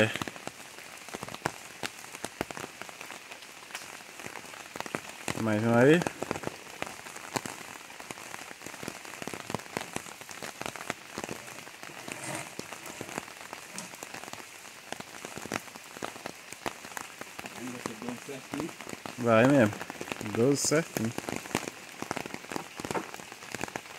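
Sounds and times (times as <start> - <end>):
rain on corrugated roof: 0.0 - 23.9.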